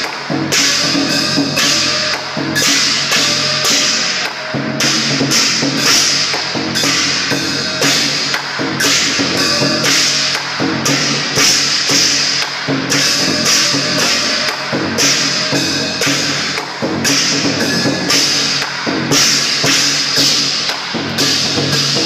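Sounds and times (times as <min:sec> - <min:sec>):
cymbals clashing: 0:00.0 - 0:22.0
large drum beating: 0:00.0 - 0:22.0.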